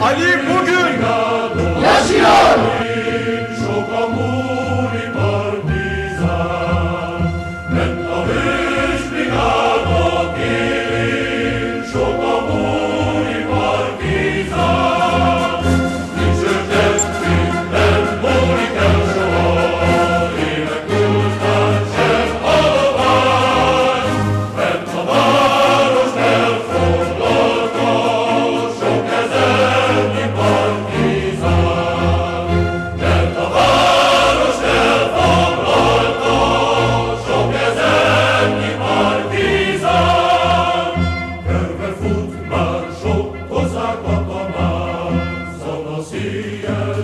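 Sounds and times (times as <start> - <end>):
choir singing sustained notes: 0.0 - 47.0.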